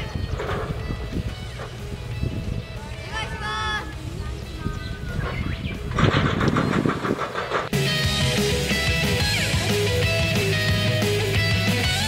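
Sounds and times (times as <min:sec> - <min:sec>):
fast pulsing rhythmic music: 0:06.7 - 0:12.0
electric guitar rock music: 0:07.7 - 0:12.0.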